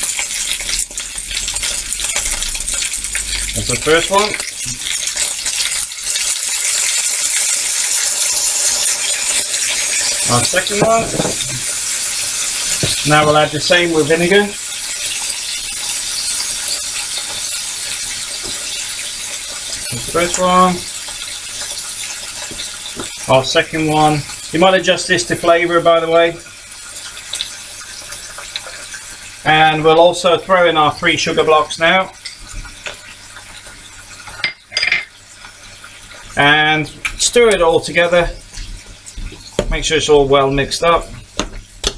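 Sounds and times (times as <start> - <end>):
food sizzling in hot oil: 0.0 - 41.9
kitchenware clink: 10.4 - 11.7, 34.3 - 35.2.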